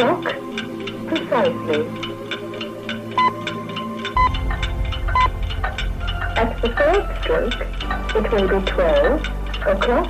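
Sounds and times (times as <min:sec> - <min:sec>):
low hum: 0:00.0 - 0:10.0
steady fast ticking: 0:00.0 - 0:10.0.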